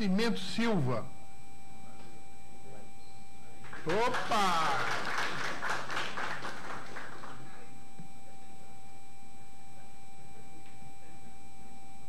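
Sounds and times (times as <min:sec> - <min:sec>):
audience applause: 0:03.7 - 0:07.5.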